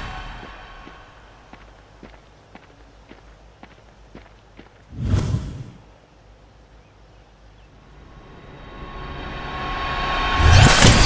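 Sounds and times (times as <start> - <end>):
faint footsteps walking: 0.3 - 5.0
rushing transition sound: 8.2 - 11.0.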